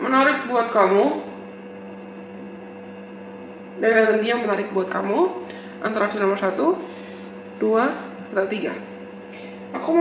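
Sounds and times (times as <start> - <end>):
woman speaking: 0.0 - 1.4, 3.8 - 6.9, 7.6 - 8.9, 9.7 - 10.0
electrical hum: 0.0 - 10.0.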